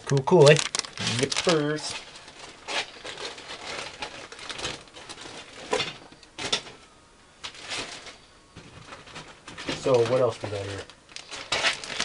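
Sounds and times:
plastic bags crinkling: 0.0s - 6.8s, 7.5s - 12.0s.

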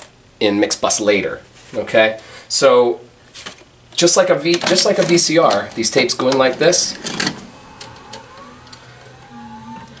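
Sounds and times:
tape machine motor whine: 5.8s - 10.0s.

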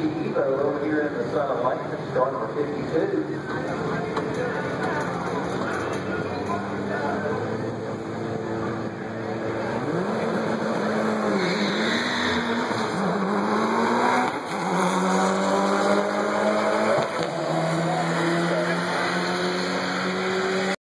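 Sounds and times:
car engine accelerating hard: 0.0s - 20.8s.

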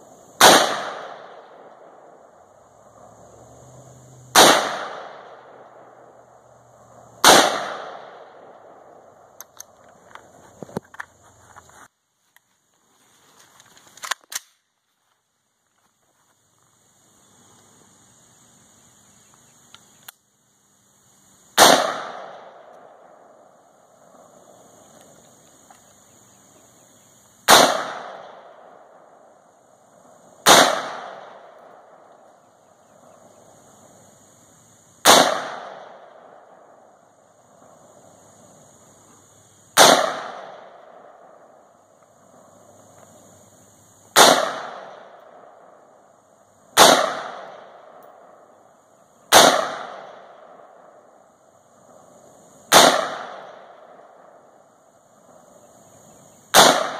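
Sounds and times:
rifle shots with echo: 0.4s - 2.4s, 4.3s - 6.1s, 7.2s - 9.1s, 21.6s - 24.5s, 27.5s - 29.4s, 30.4s - 32.3s, 35.0s - 37.0s, 39.8s - 41.8s, 44.1s - 46.1s, 46.8s - 48.6s, 49.3s - 51.3s, 52.7s - 54.6s, 56.5s - 56.9s.

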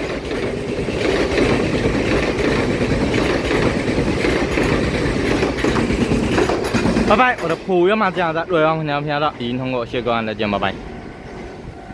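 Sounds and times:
train wheels rumbling on rails: 0.0s - 11.9s.

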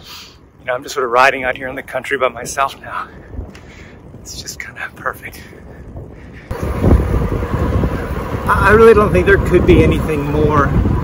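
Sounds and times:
wind buffeting microphone: 0.4s - 11.0s.

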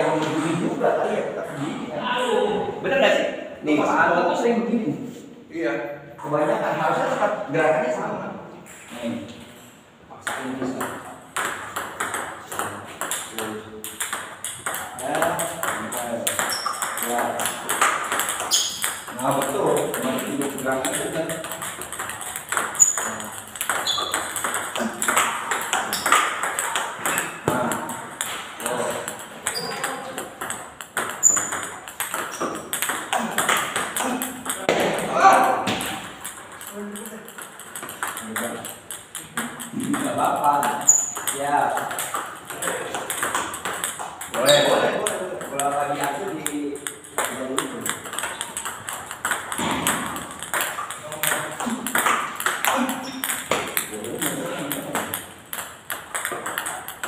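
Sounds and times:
table tennis ball clicks: 10.3s - 34.9s, 35.7s - 57.0s.

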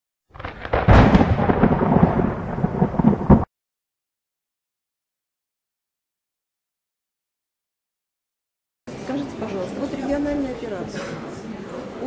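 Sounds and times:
rumbling crackling intro effect: 0.3s - 3.5s.

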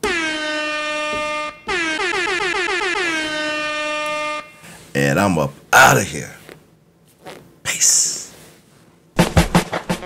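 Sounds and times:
buzzy horn sound effect: 0.0s - 4.8s.

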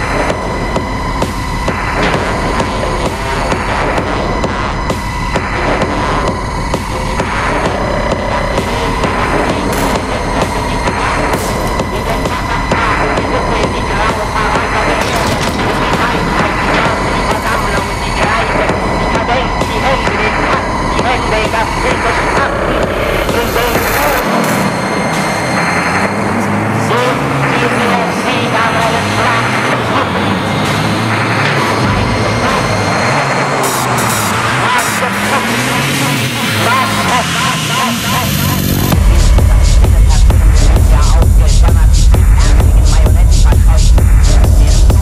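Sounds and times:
dark techno beat: 0.0s - 45.0s
swooping synth tones: 0.0s - 45.0s.

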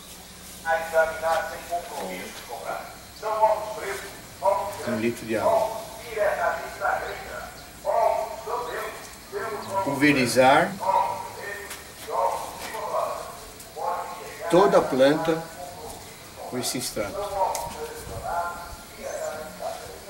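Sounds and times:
people talking indistinctly: 0.7s - 20.0s.

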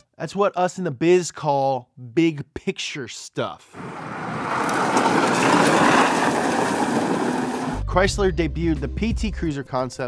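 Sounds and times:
tyres churning loose dirt: 3.8s - 7.8s.

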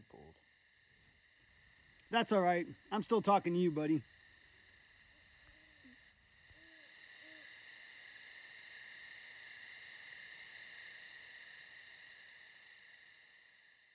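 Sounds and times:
night insects chorus: 0.0s - 13.9s.

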